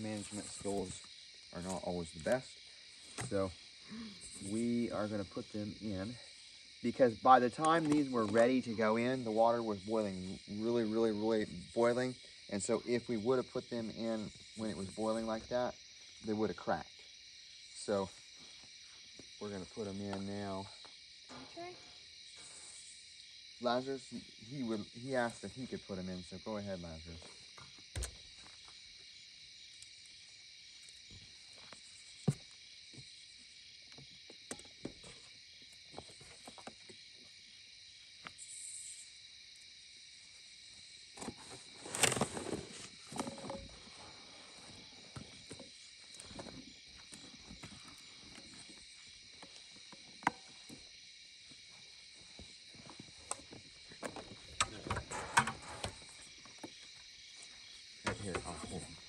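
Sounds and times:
crickets chirring: 0.0s - 59.0s.

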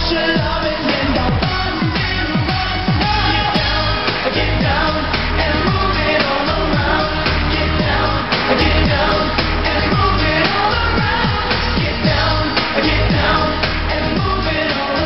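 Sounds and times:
dance-pop backing track: 0.0s - 15.0s
male group singing: 0.0s - 15.0s
sliding bass notes: 0.0s - 15.0s.

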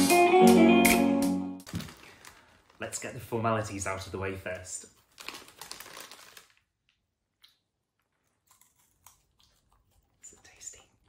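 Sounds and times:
plastic snack packet crinkling: 1.6s - 7.0s.

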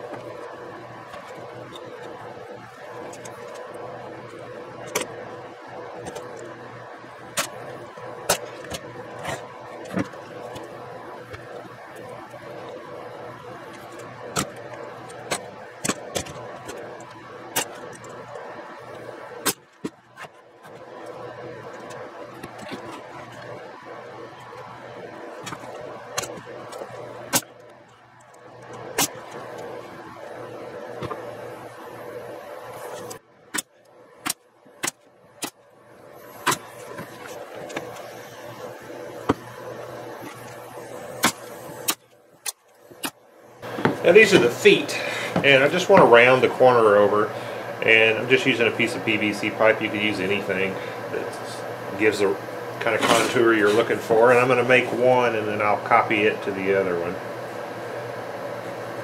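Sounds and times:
steady hum: 0.0s - 59.0s
air nailer shots: 40.2s - 46.1s.

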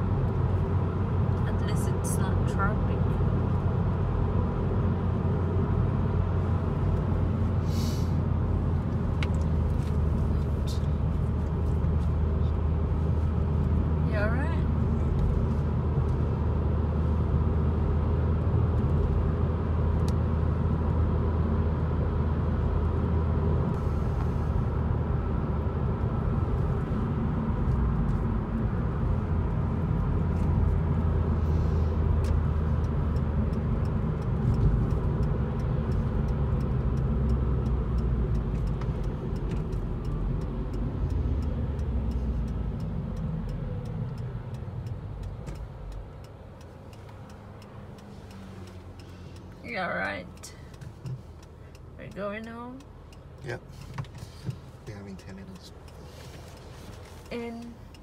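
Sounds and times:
road and engine noise in car: 0.0s - 58.0s.

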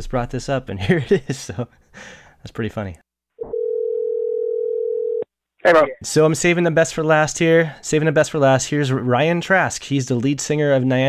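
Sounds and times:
telephone ringback tone: 3.4s - 5.3s.

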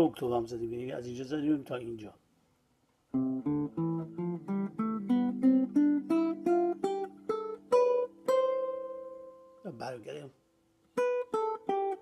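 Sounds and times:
acoustic guitar scale: 0.0s - 2.3s, 3.1s - 12.0s.

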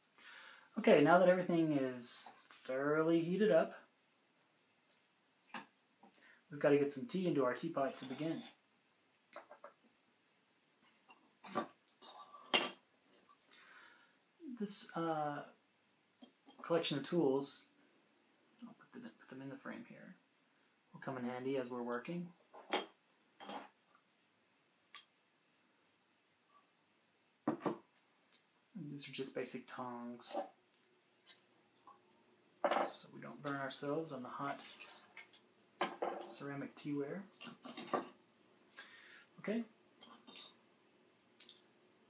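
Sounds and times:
person speaking: 0.7s - 3.9s, 6.1s - 8.6s, 28.7s - 30.6s, 32.6s - 35.3s, 36.0s - 37.6s, 38.8s - 39.8s.

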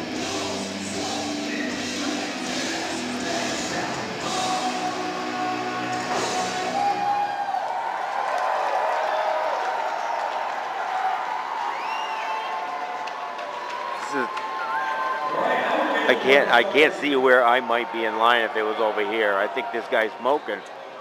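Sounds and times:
amplified live band music: 0.0s - 7.0s
crowd chatter: 12.6s - 21.0s.

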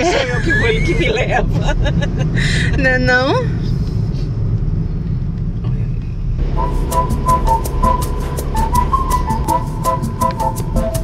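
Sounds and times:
car engine and tyres rumbling: 0.0s - 11.0s
background music with beat: 6.4s - 11.0s.

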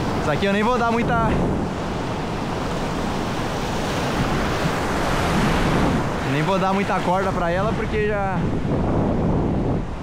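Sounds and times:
ocean surf washing: 0.0s - 10.0s
wind buffeting microphone: 0.0s - 10.0s.

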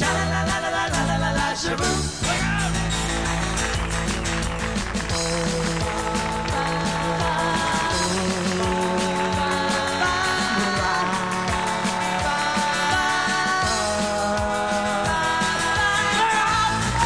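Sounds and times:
acoustic guitar: 0.0s - 17.0s
drum beat: 0.0s - 17.0s
electric bass: 0.0s - 17.0s.

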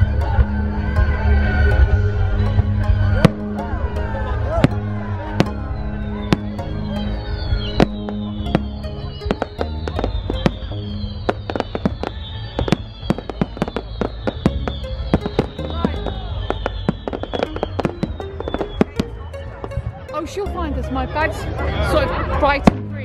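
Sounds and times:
music playing: 0.0s - 23.0s
fireworks bangs and crackling: 4.5s - 5.6s, 6.2s - 19.9s.

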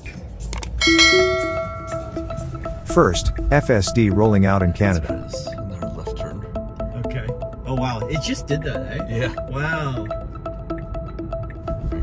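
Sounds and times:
bright bell chime: 0.8s - 2.6s.

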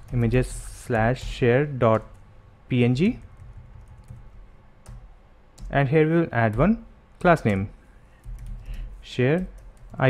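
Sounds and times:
low steady hum: 0.0s - 10.0s
keyboard keystrokes: 6.5s - 10.0s.

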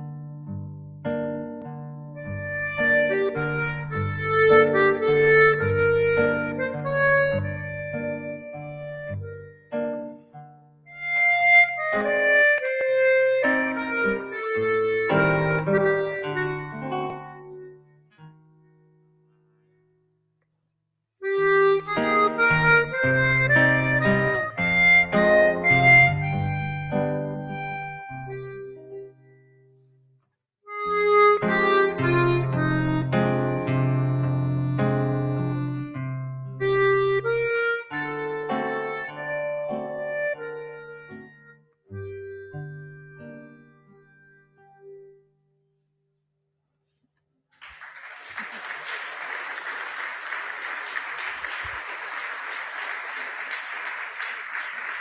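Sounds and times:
accordion playing slow tune: 2.2s - 10.0s, 10.9s - 17.9s, 21.2s - 29.5s, 30.7s - 45.2s.

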